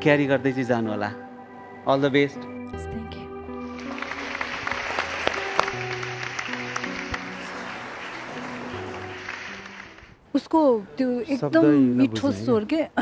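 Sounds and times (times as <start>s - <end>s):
background music of held chords: 0.0s - 10.0s
applause: 3.6s - 10.2s.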